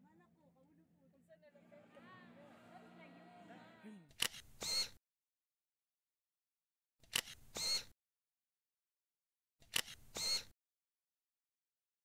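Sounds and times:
camera shutter click: 0:04.2 - 0:04.9, 0:07.0 - 0:07.9, 0:09.7 - 0:10.5.

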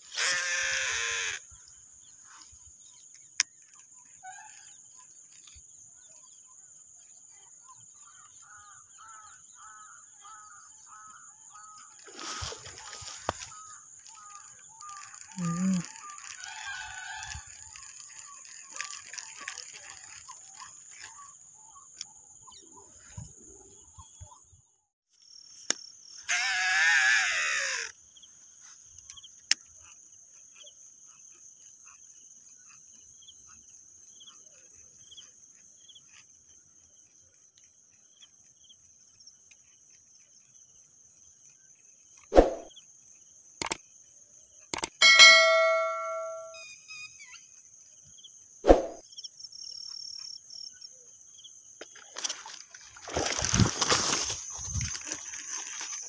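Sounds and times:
crickets buzzing: 0:00.0 - 0:06.5, 0:08.0 - 0:22.6, 0:25.2 - 0:56.0.

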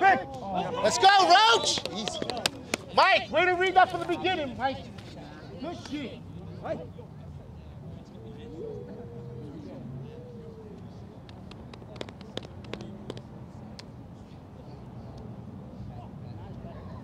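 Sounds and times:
faint distant voices: 0:00.0 - 0:17.0.

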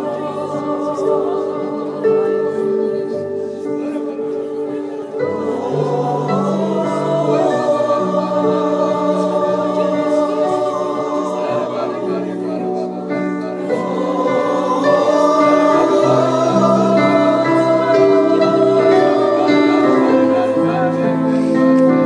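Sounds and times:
men singing worship song: 0:00.0 - 0:02.6, 0:04.6 - 0:22.0.

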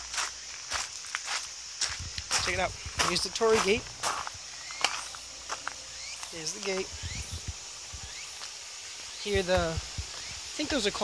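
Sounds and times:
short high insect calls: 0:00.0 - 0:11.0
footsteps thumping: 0:00.7 - 0:08.6.

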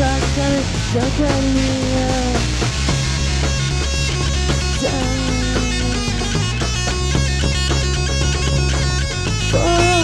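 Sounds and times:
bass guitar: 0:00.0 - 0:10.0
electric guitar: 0:00.0 - 0:10.0
steady drumbeat: 0:00.0 - 0:10.0.

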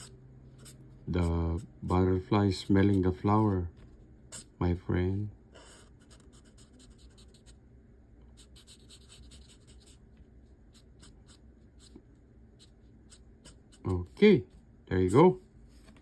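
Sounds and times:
marker scratching on paper: 0:00.0 - 0:03.3, 0:04.3 - 0:04.6, 0:05.5 - 0:07.6, 0:08.3 - 0:14.2.

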